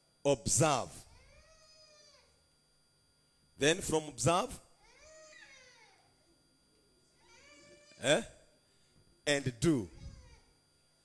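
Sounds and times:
man saying eh: 0:08.0 - 0:08.4, 0:09.3 - 0:10.1.

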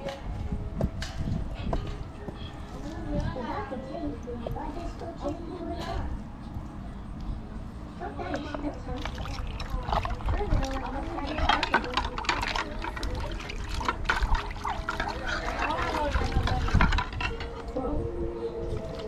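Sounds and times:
water splashing in plastic basin: 0:08.9 - 0:17.2.

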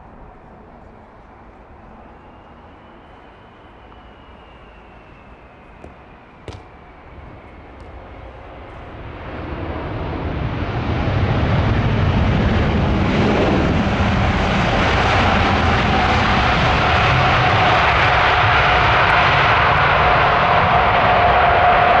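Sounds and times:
steady whine: 0:00.0 - 0:16.8
jet engines running: 0:00.0 - 0:22.0.

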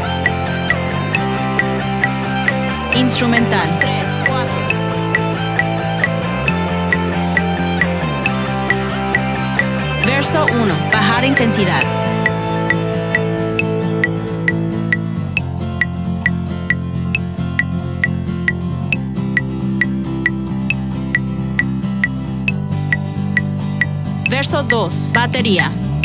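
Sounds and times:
bass and guitar chords: 0:00.0 - 0:26.0
metronome clicks: 0:00.0 - 0:26.0.

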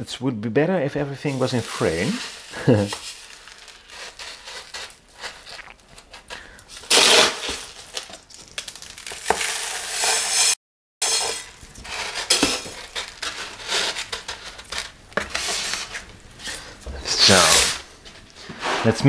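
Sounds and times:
pumice grains poured from metal scoop: 0:01.3 - 0:05.0.

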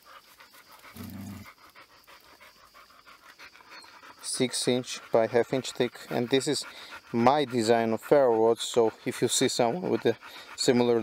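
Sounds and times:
dog panting: 0:00.0 - 0:11.0.

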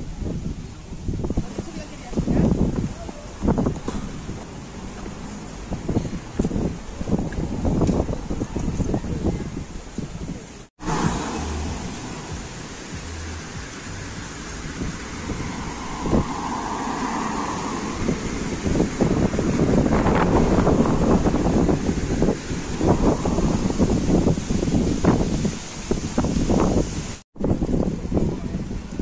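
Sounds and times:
traffic noise: 0:00.0 - 0:29.0
wind buffeting microphone: 0:00.0 - 0:29.0.

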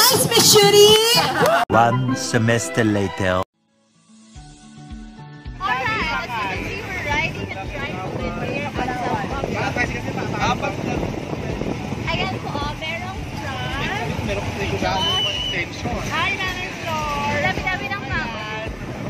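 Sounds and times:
passengers talking and shouting: 0:00.0 - 0:03.4, 0:05.5 - 0:19.0
music: 0:00.0 - 0:19.0
motorcycle engine and road rumble: 0:06.2 - 0:19.0.

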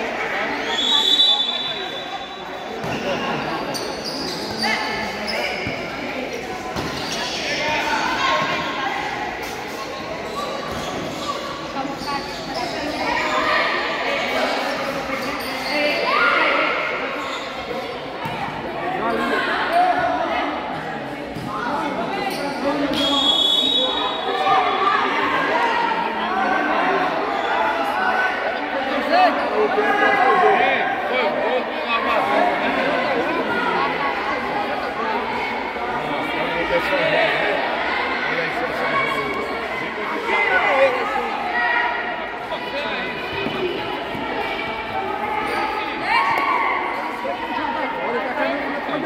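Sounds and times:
people shouting in echoing gym: 0:00.0 - 0:49.0
referee's whistle blasts: 0:00.6 - 0:02.6, 0:22.9 - 0:24.4.

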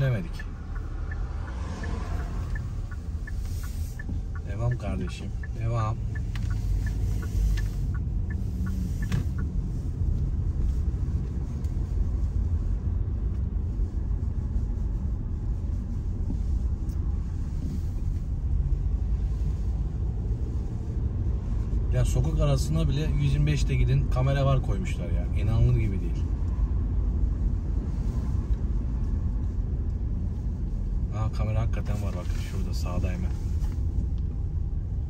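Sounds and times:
car engine rumble: 0:00.0 - 0:35.0
tyres on road: 0:00.0 - 0:35.0.

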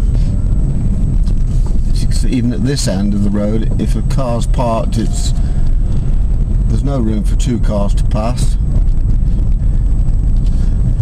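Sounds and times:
car engine rumble: 0:00.0 - 0:11.0
tyres on the road: 0:00.0 - 0:11.0.

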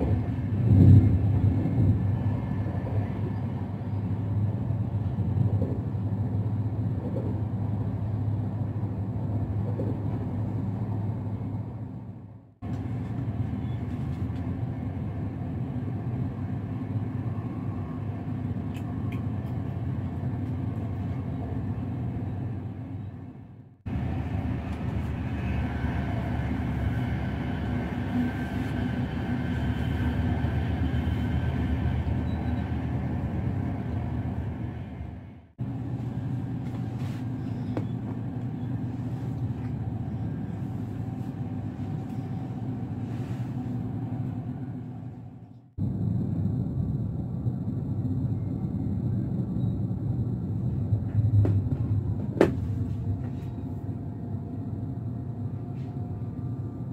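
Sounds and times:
train wheels rumbling: 0:00.0 - 0:56.9.

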